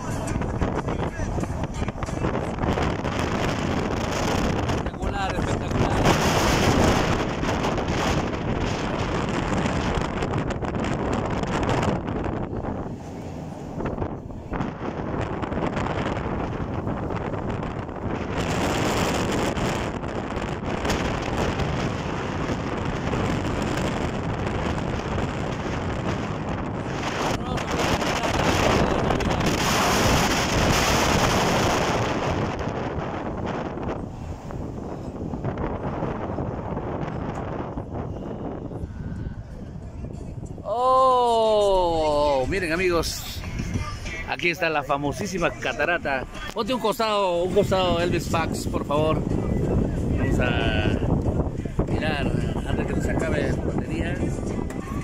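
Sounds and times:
wind rushing over microphone: 0.0s - 55.0s.

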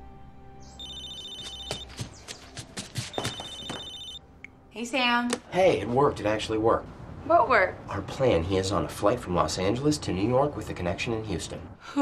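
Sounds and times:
music: 0.0s - 5.5s
mobile phone ringing: 0.8s - 2.0s, 3.0s - 4.2s.

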